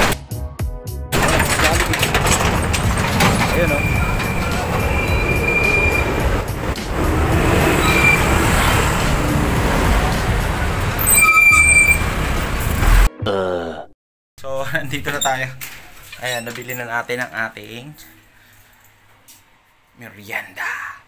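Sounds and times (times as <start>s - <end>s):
motorcycle road noise: 2.1s - 13.0s.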